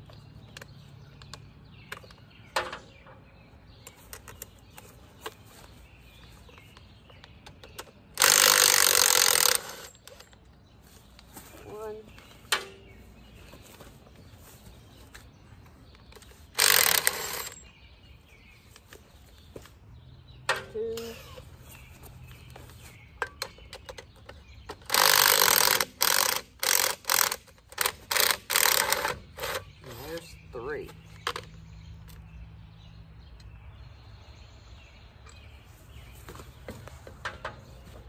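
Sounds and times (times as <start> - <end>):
impact wrench undoing bolts: 7.5 - 10.4, 16.1 - 17.6.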